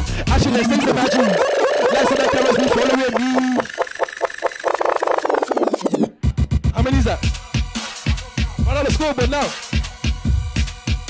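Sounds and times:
stuttering grime beat: 0:00.6 - 0:06.1
steady high tone: 0:00.7 - 0:05.9.

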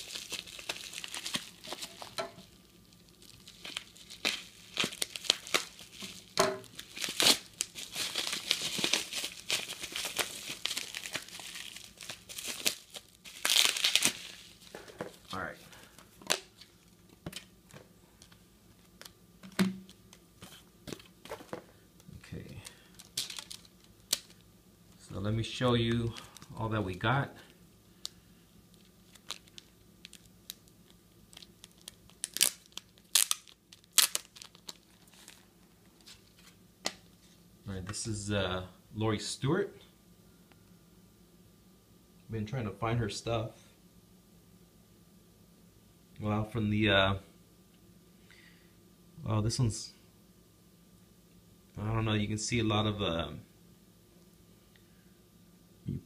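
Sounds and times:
bubble wrap crinkling: 0:00.0 - 0:26.8, 0:28.0 - 0:37.4.

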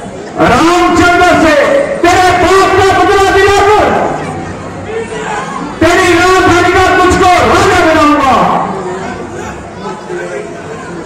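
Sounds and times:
quiet voices in a hall: 0:00.0 - 0:11.0
man declaiming loudly: 0:00.4 - 0:04.2, 0:04.9 - 0:08.7.

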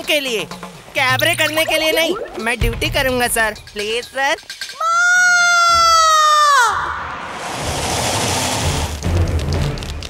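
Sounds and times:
woman screaming: 0:04.8 - 0:07.1
rushing noise: 0:06.4 - 0:09.5.

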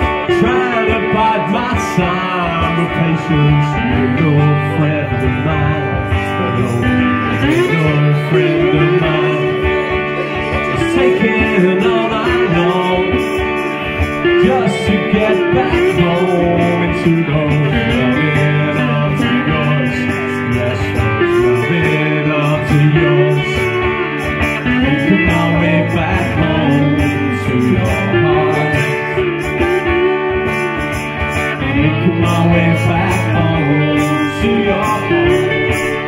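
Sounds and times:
acoustic guitars strummed: 0:00.0 - 0:36.0
man singing: 0:00.0 - 0:36.0.

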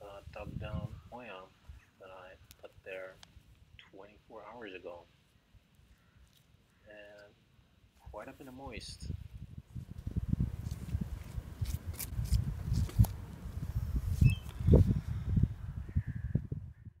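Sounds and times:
wind buffeting microphone: 0:00.0 - 0:01.9, 0:08.1 - 0:17.0.

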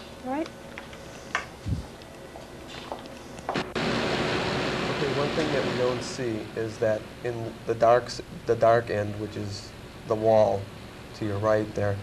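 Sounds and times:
faint steady hum: 0:00.0 - 0:12.0
film processing machine running: 0:02.7 - 0:12.0.

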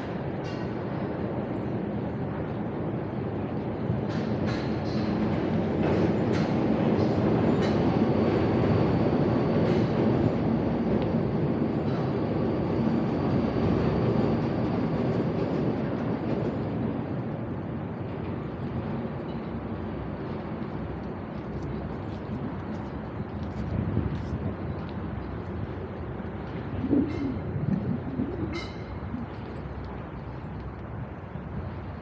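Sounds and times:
train rumbling on bridge: 0:00.0 - 0:32.0.

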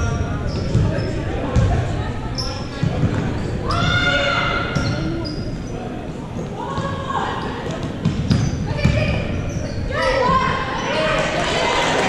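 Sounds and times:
people shouting: 0:03.6 - 0:04.8.

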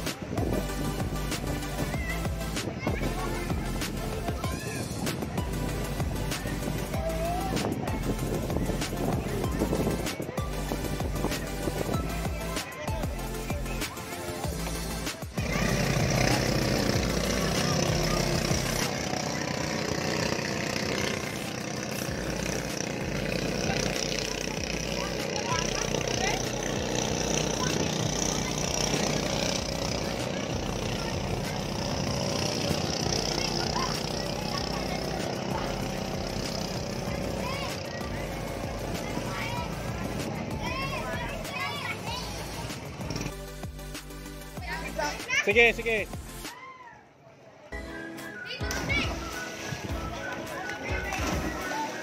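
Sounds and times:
boat engine running: 0:00.0 - 0:45.0, 0:48.6 - 0:52.0
music playing: 0:00.0 - 0:46.6, 0:47.7 - 0:52.0.

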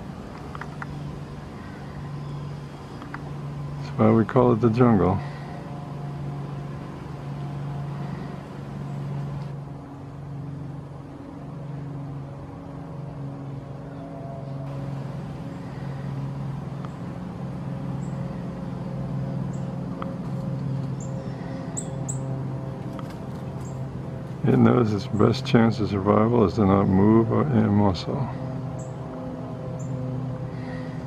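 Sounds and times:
low mechanical hum: 0:00.0 - 0:31.0.

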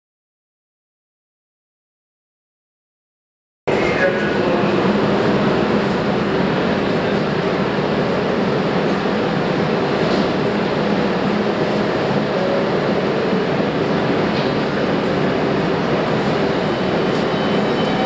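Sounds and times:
station noise: 0:03.7 - 0:18.0
subway train equipment humming: 0:03.7 - 0:18.0.

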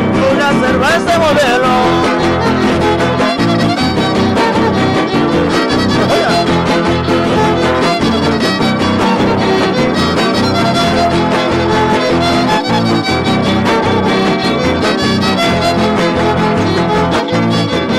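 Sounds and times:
rhythmic guitar strumming: 0:00.0 - 0:17.9
violin melody: 0:00.0 - 0:17.9.

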